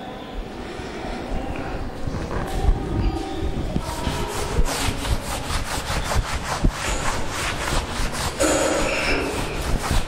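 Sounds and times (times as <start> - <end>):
duster rubbing on blackboard: 3.8 - 10.0.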